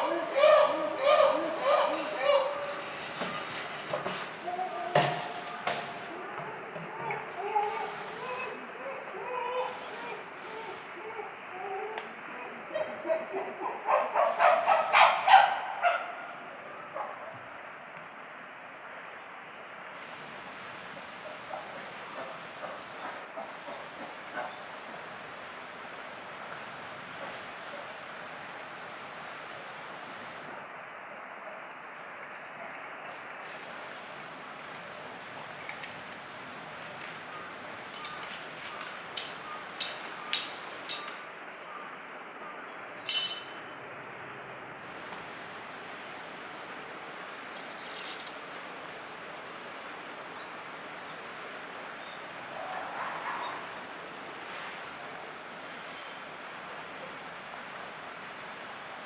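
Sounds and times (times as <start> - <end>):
chimpanzees hooting: 0.0 - 16.0
background hiss: 0.0 - 59.0.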